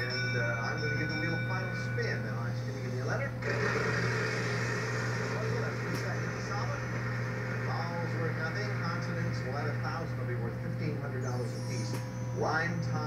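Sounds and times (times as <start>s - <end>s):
game show audio from television: 0.0s - 13.0s
steady low hum: 0.0s - 13.0s.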